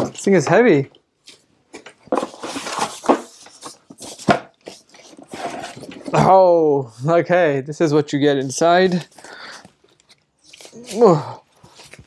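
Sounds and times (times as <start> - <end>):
packaging rustling and knocking: 1.7 - 6.2.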